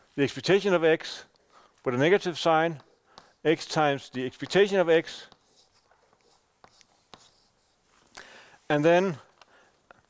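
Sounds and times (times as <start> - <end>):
chalk writing on a blackboard: 1.0 - 7.9
chalk tapping on board: 2.2 - 7.8.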